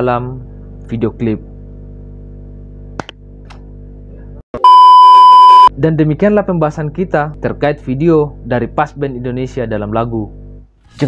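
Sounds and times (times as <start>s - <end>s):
tv test-tone beep: 4.6s - 5.7s.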